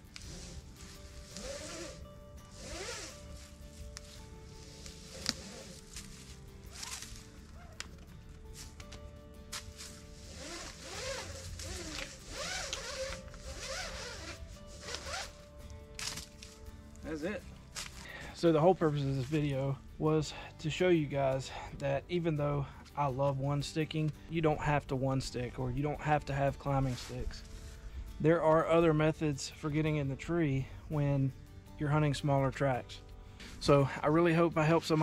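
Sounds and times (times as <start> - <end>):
rope swishing through hands: 0.0 - 15.4
soft background music: 0.0 - 35.0.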